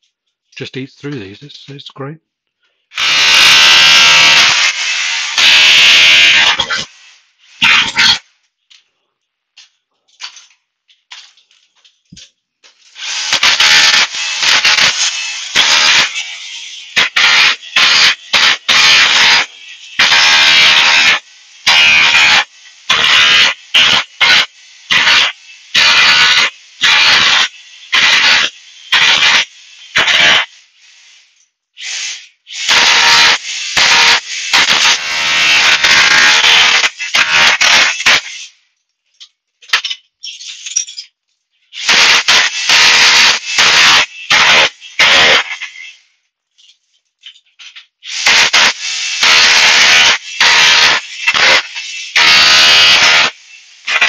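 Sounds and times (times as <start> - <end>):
hammer drill chiseling floor tiles: 2.9 - 6.9, 13.0 - 30.4, 32.6 - 38.3, 41.8 - 45.5, 48.1 - 54.0.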